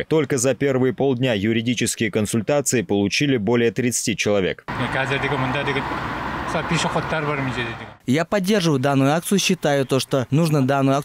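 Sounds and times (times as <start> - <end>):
motor vehicles running: 4.7 - 8.0.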